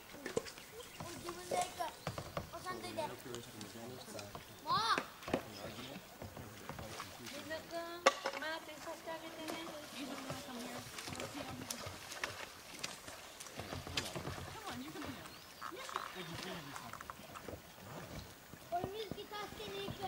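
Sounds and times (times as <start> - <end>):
kayak paddle knocks and splashes: 0.2 - 20.0.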